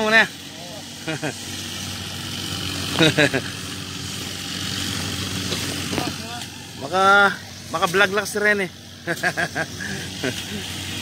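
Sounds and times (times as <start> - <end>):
motor humming steadily: 0.0 - 11.0.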